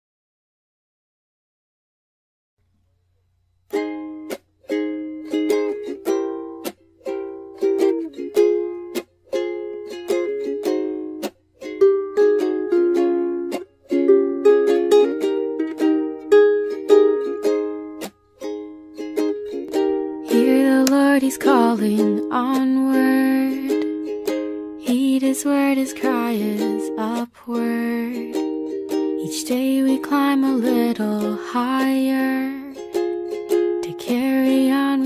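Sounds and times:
ukulele chords strummed and plucked: 0:03.6 - 0:35.0.

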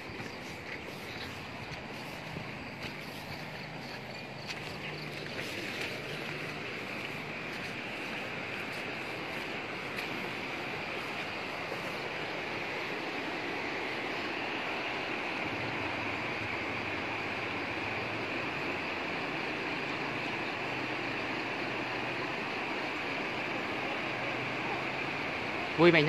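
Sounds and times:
floodwater rushing: 0:00.0 - 0:26.0.

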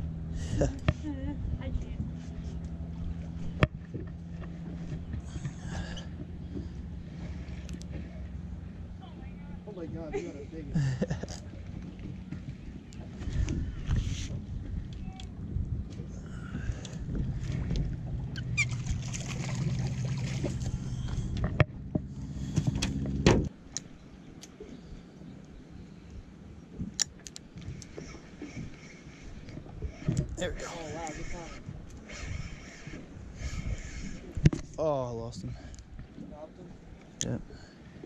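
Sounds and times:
boat engine idling: 0:00.0 - 0:38.0.

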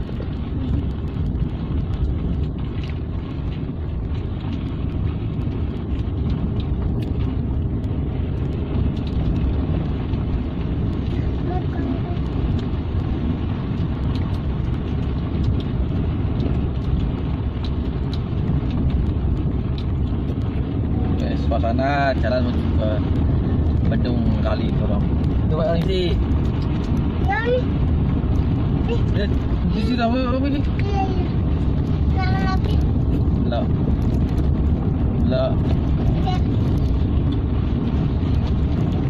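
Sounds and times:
car engine and tyre rumble: 0:00.0 - 0:39.0.

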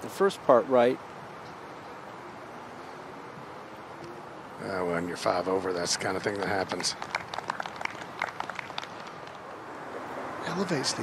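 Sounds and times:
scattered hand claps: 0:06.2 - 0:09.4.

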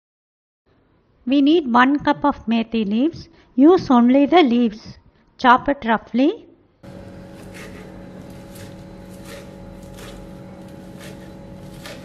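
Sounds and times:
steady low hum: 0:06.8 - 0:12.0
knife chopping on plastic board: 0:07.2 - 0:12.0.

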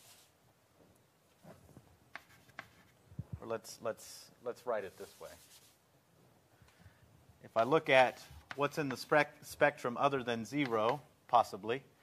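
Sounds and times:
chalk scraping on blackboard: 0:02.1 - 0:03.0, 0:04.8 - 0:05.8, 0:07.5 - 0:09.3
chalk tapping: 0:02.1 - 0:03.0, 0:07.6 - 0:09.2, 0:10.5 - 0:11.6.

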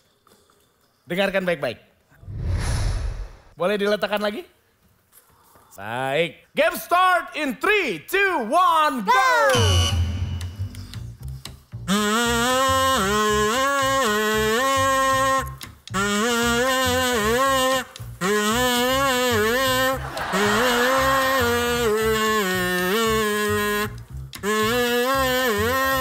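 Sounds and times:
toy trumpet playing wavering tune: 0:09.5 - 0:10.7, 0:11.9 - 0:26.0.

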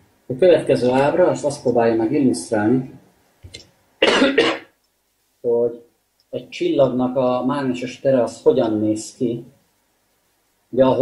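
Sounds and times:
man coughing: 0:04.0 - 0:04.7.

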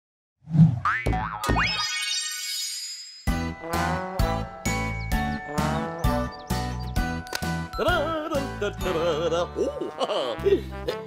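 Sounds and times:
springy boing effects: 0:00.8 - 0:02.0.

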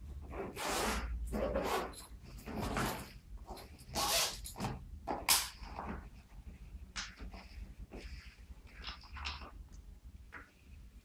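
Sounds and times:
nylon backpack rustling: 0:00.3 - 0:04.8.

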